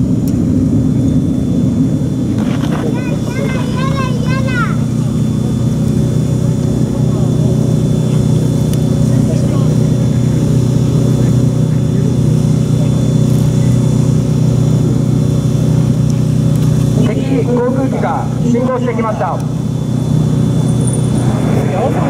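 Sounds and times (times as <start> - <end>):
engine droning: 0.0 - 22.0.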